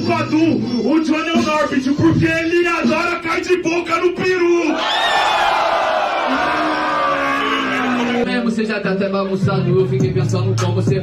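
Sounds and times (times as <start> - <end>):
crowd shouting and cheering: 4.2 - 8.5
long low drawn-out shout: 4.8 - 8.2.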